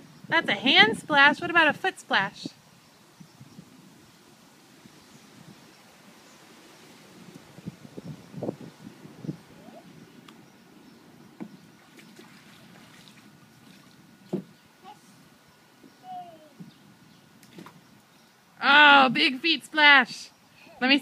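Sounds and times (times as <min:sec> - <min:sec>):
water splashes in plastic pool: 0:11.8 - 0:14.4
small child's voice: 0:14.8 - 0:15.1, 0:16.0 - 0:16.6.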